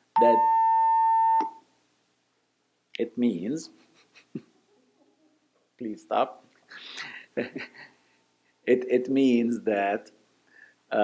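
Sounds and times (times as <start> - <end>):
steady electronic beep: 0.2 - 1.6.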